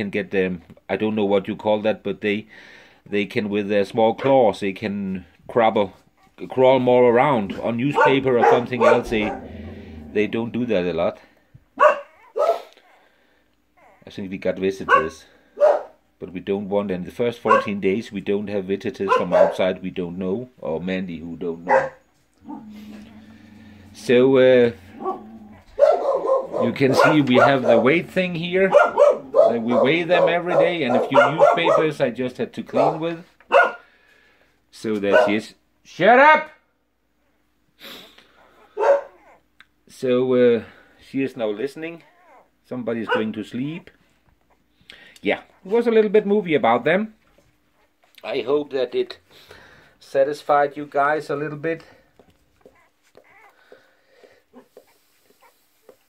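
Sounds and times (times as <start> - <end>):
dog barking: 7.9 - 9.5, 11.8 - 12.7, 14.9 - 16.0, 17.4 - 17.8, 19.0 - 19.6, 21.7 - 22.6, 25.0 - 27.9, 28.7 - 32.0, 32.7 - 33.8, 35.1 - 35.4, 38.6 - 39.2, 43.1 - 43.3.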